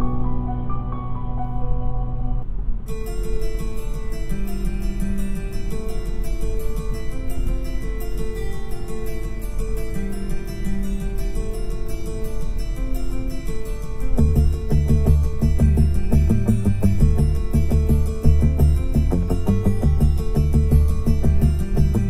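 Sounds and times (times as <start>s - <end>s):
classical music in car: 0.0s - 22.0s
rock music with plucked notes: 3.0s - 22.0s.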